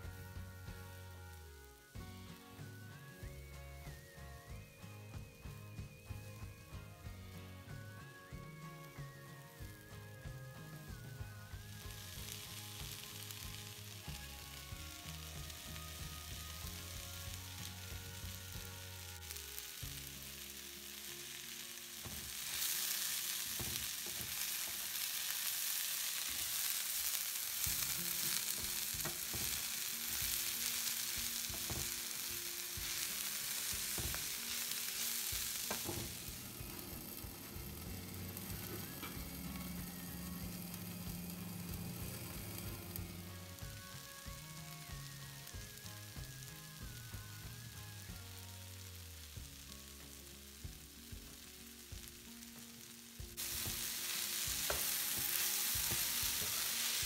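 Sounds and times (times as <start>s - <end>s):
vegetables sizzling in a pan: 0.0s - 57.0s.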